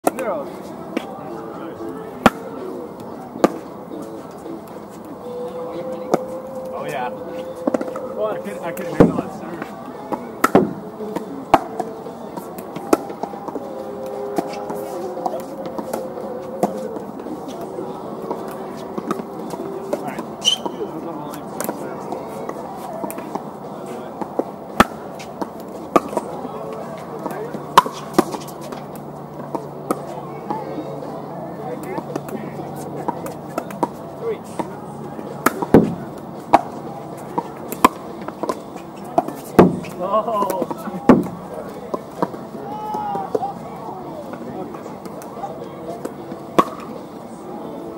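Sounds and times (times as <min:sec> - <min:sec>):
distant voices: 0:00.0 - 0:47.9.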